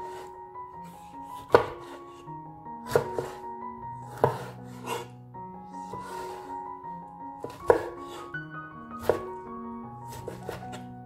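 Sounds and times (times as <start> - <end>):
knife chopping on wooden board: 1.3 - 2.0, 2.9 - 3.4, 4.1 - 5.1, 7.4 - 8.2, 9.0 - 9.2, 10.1 - 10.8.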